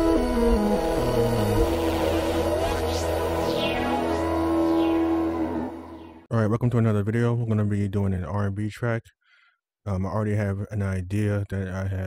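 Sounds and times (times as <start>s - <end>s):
electronic intro music: 0.0s - 6.3s.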